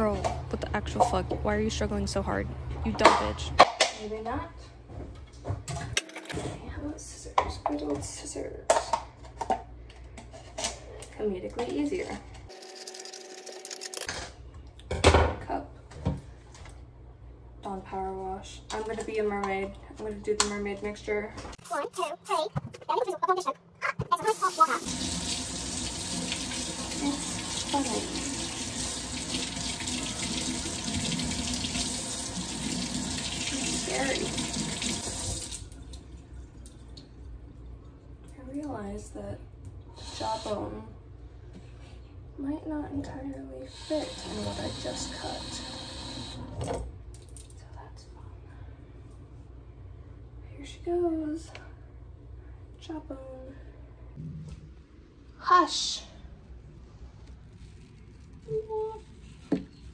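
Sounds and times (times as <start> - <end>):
faucet water splashing into sink: 24.3 - 37.1.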